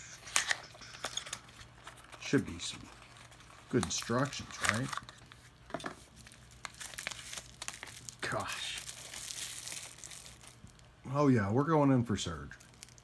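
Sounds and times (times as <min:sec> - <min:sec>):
plastic bag crinkling: 0:06.0 - 0:11.0, 0:12.3 - 0:13.0.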